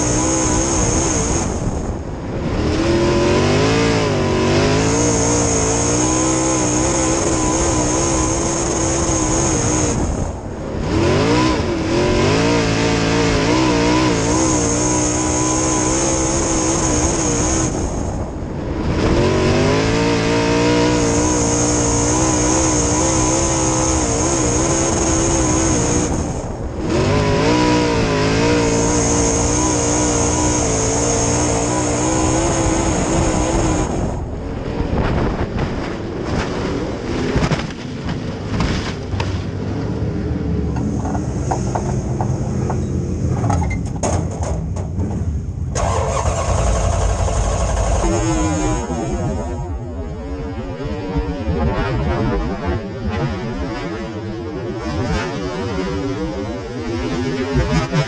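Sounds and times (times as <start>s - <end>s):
race car engine revving: 0.0s - 58.0s.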